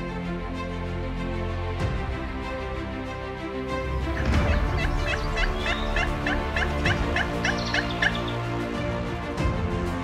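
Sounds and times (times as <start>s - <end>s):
music: 0.0s - 10.0s
turkey call yelps: 4.2s - 8.4s.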